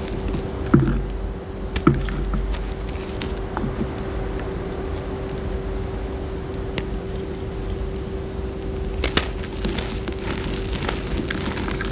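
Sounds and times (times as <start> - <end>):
low hum and hiss: 0.0 - 11.9
chalk block cracking: 9.0 - 11.9.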